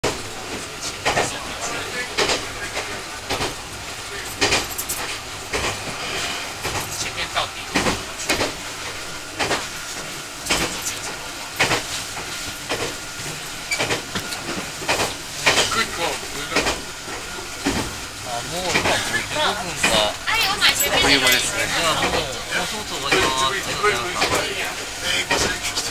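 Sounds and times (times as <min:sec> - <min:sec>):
train running noise: 0:00.0 - 0:25.9
wheel clicks over rail joints: 0:02.1 - 0:05.9, 0:10.4 - 0:18.0, 0:19.8 - 0:22.2, 0:23.0 - 0:25.9.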